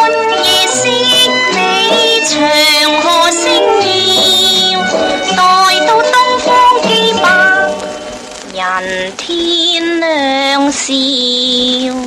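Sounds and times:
instrumental accompaniment: 0:00.0 - 0:09.2
woman singing: 0:00.0 - 0:12.0.

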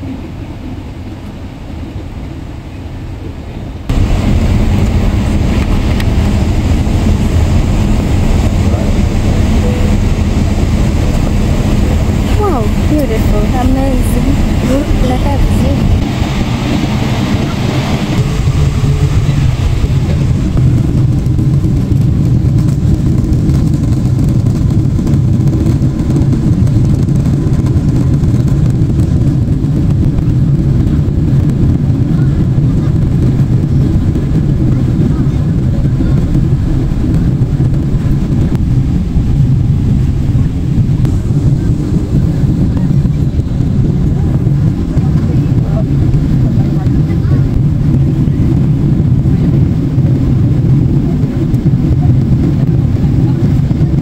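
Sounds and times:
jet engines roaring: 0:00.0 - 0:54.0.

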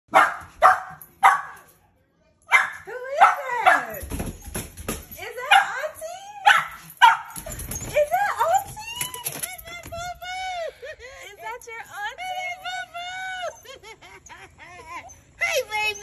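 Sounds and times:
young dog barking: 0:00.1 - 0:01.6, 0:02.5 - 0:03.9, 0:06.4 - 0:07.4
dog whining and yelping: 0:06.5 - 0:10.2.

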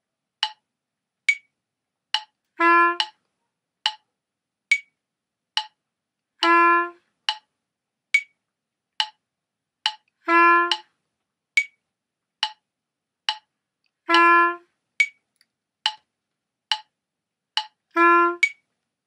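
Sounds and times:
metronome clicking: 0:00.4 - 0:00.6, 0:01.3 - 0:01.5, 0:02.1 - 0:02.4, 0:03.0 - 0:03.2, 0:03.8 - 0:04.0, 0:04.7 - 0:05.0, 0:05.6 - 0:05.8, 0:07.3 - 0:07.5, 0:08.2 - 0:08.4, 0:09.0 - 0:09.2, 0:09.8 - 0:10.1, 0:10.7 - 0:10.9, 0:11.6 - 0:11.8, 0:12.4 - 0:12.6, 0:13.3 - 0:13.5, 0:15.0 - 0:16.1, 0:16.7 - 0:16.9, 0:17.6 - 0:18.7.

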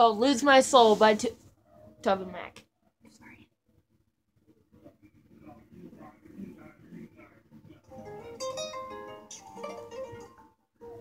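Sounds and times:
plucked guitar notes: 0:07.9 - 0:11.0.

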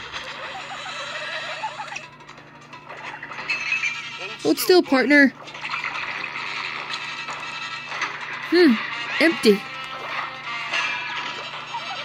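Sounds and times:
horse whinnying: 0:00.5 - 0:02.0
soft background music: 0:06.9 - 0:12.0.

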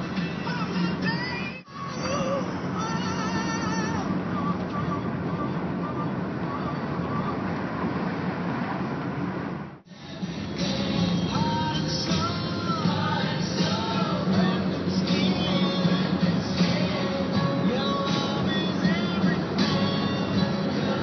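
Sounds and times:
car road noise: 0:00.0 - 0:21.0
music with wavering melody: 0:10.0 - 0:21.0.

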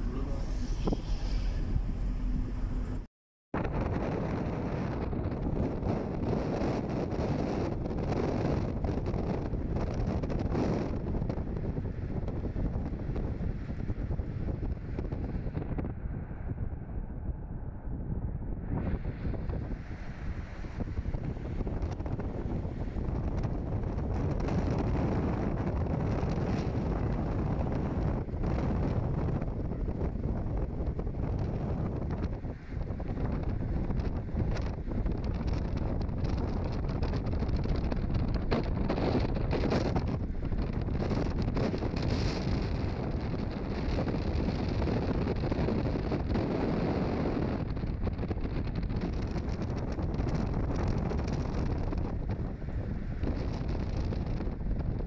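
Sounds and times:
car road and engine noise: 0:00.0 - 0:55.0
wind on microphone: 0:00.0 - 0:55.0.

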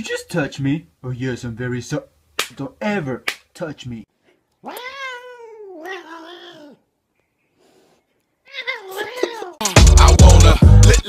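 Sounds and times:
cat meowing: 0:04.6 - 0:06.8, 0:08.4 - 0:09.6.

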